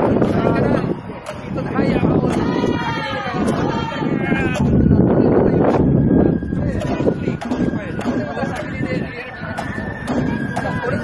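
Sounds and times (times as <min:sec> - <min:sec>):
loud noisy background: 0:00.0 - 0:11.0
people's voices: 0:00.0 - 0:11.0.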